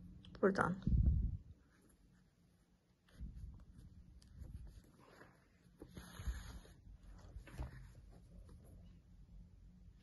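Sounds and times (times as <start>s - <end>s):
yarn rustling through fabric: 1.1s - 9.1s.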